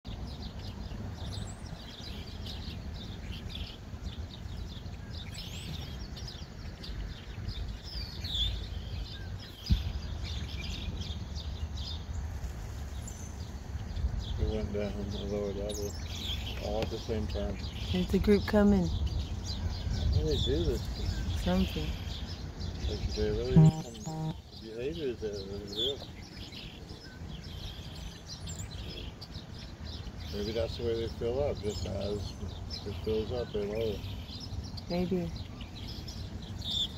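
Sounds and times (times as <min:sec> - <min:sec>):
small birds chirping: 0:00.1 - 0:36.9.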